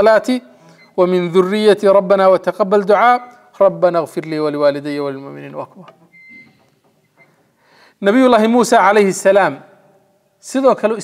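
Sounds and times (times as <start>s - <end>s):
man talking: 0.0s - 6.0s, 8.0s - 9.7s, 10.4s - 11.0s
soft intake of breath: 7.4s - 8.0s.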